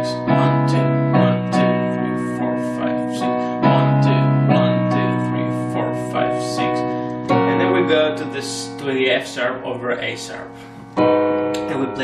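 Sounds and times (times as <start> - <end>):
piano playing slow chords: 0.0 - 12.0.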